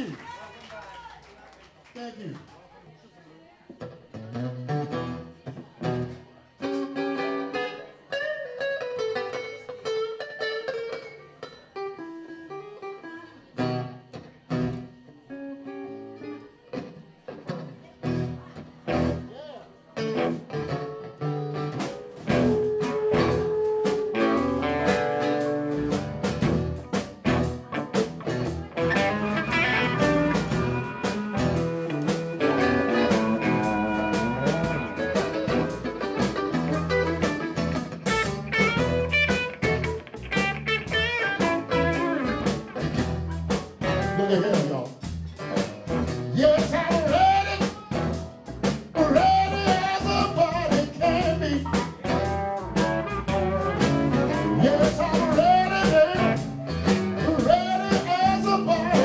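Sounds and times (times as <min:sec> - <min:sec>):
live blues band playing: 0:03.8 - 0:19.3, 0:19.9 - 0:59.0
picked guitar notes: 0:03.8 - 0:59.0.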